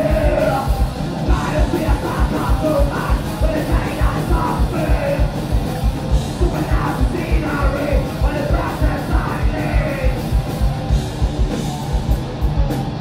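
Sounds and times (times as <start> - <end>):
harsh shouted vocals: 0.0 - 5.3, 6.4 - 10.3
live metal band playing: 0.0 - 13.0.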